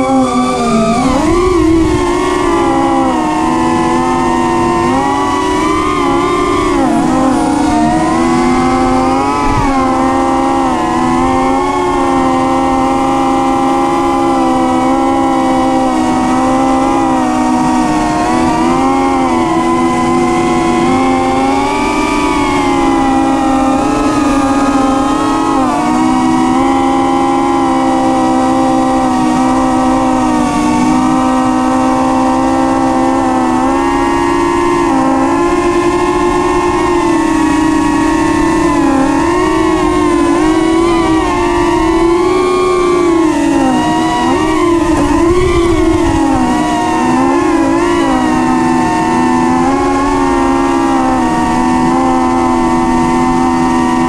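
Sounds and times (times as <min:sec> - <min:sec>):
drone propellers whining: 0:00.0 - 0:54.0.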